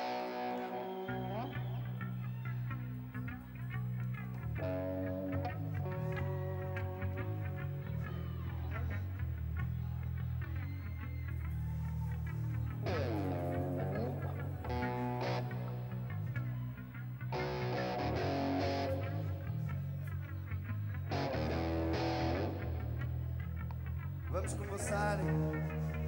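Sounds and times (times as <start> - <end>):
electric bass line: 0.0 - 26.0
electric guitar phrases: 0.0 - 26.0.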